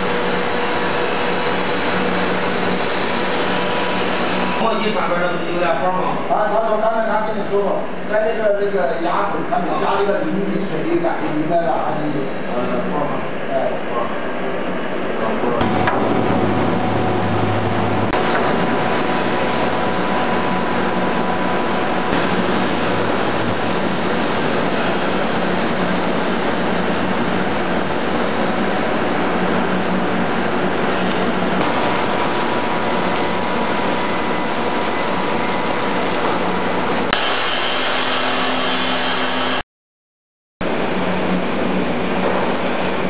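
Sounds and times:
heavy factory machinery din: 0:00.0 - 0:05.7, 0:15.2 - 0:39.6
steady motor hum: 0:00.0 - 0:39.6
cut-off saw grinding steel pipe: 0:37.1 - 0:39.6.

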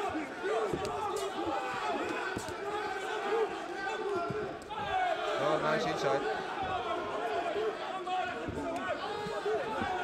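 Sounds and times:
crowd shouting: 0:00.0 - 0:10.0.

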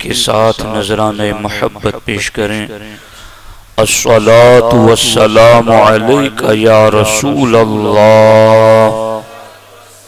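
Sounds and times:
man chanting: 0:00.0 - 0:03.1, 0:03.8 - 0:10.0.

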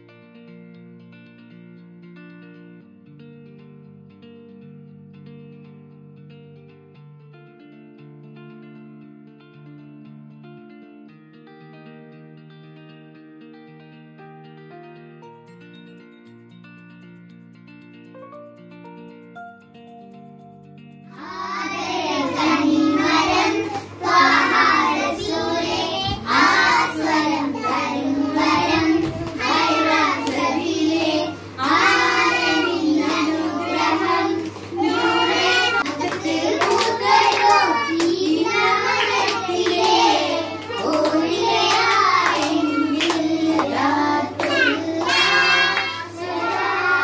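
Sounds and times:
girls singing together: 0:21.2 - 0:47.0
hands clapping: 0:28.5 - 0:46.8.

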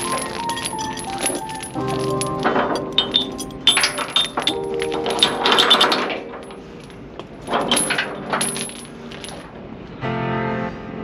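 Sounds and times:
chain clinking and rattling: 0:00.0 - 0:09.6.

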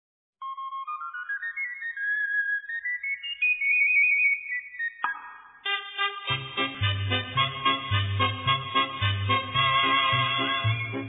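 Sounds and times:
small flute melody: 0:00.4 - 0:11.0.

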